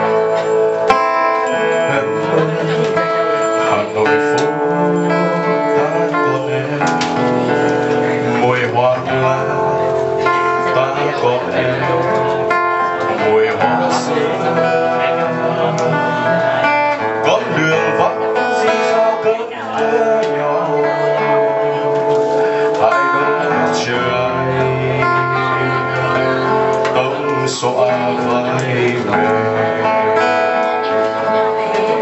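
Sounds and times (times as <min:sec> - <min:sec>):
acoustic guitar: 0:00.0 - 0:32.0
man singing into microphone: 0:00.0 - 0:32.0.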